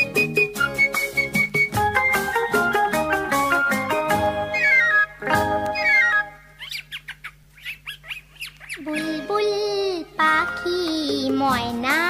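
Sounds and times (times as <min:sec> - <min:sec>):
bird chirping: 0:04.2 - 0:09.1.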